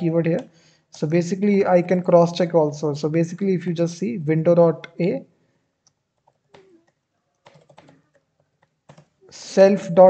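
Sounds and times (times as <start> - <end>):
typing on computer keyboard: 6.2 - 9.2.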